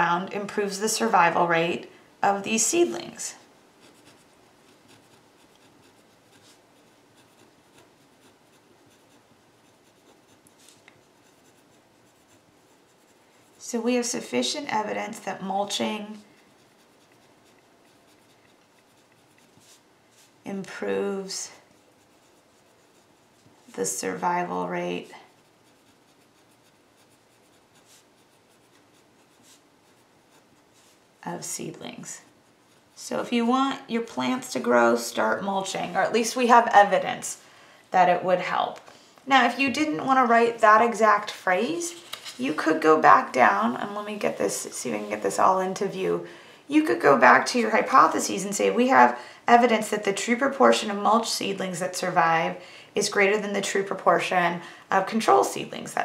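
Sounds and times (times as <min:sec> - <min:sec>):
pen scratching on paper: 0:03.8 - 0:36.7.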